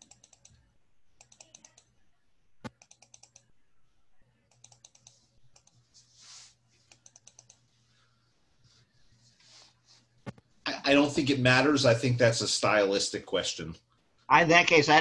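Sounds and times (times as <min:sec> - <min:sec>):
typing on computer keyboard: 0:00.0 - 0:00.6, 0:01.2 - 0:01.9, 0:02.7 - 0:03.5, 0:04.5 - 0:05.7, 0:06.9 - 0:07.6
low steady hum: 0:00.0 - 0:14.8.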